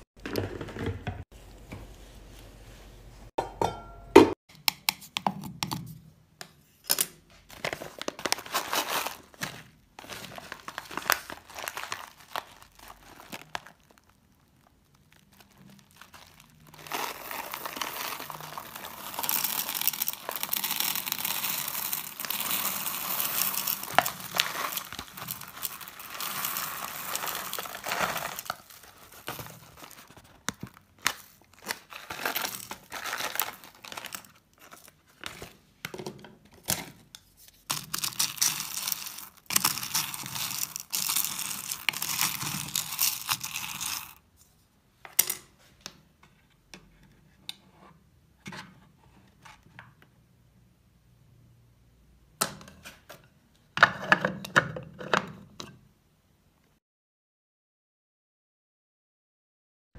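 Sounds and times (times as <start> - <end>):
plastic bag crinkling: 7.5 - 35.5, 37.7 - 44.2
beads rattling into metal pot: 16.0 - 30.0, 37.7 - 44.2.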